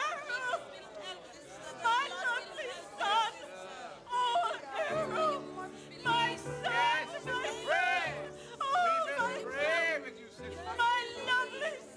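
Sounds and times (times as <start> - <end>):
chatter of voices: 0.0 - 11.9.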